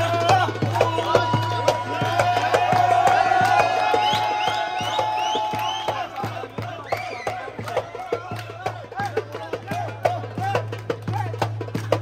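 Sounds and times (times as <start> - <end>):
steady drum beat: 0.0 - 12.0
crowd cheering and whooping: 0.8 - 8.2.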